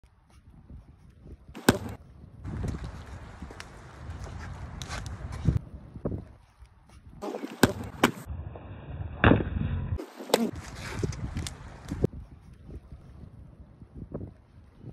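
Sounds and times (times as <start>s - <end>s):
wind rumbling on microphone: 0.0s - 7.2s, 7.9s - 14.9s.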